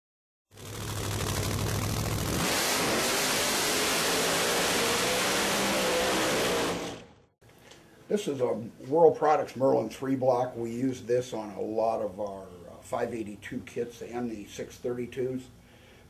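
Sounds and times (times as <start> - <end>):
car engine revving: 0.6 - 7.2.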